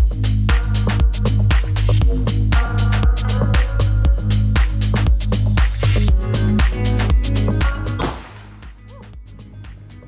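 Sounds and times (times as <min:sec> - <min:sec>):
quiet background music: 0:06.2 - 0:10.0
rifle shot: 0:08.0 - 0:08.5.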